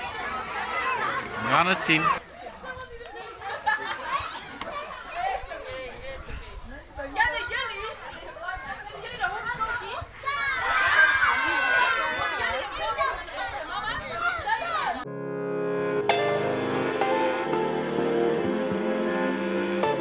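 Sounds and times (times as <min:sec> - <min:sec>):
children talking and calling out: 0:00.0 - 0:15.1.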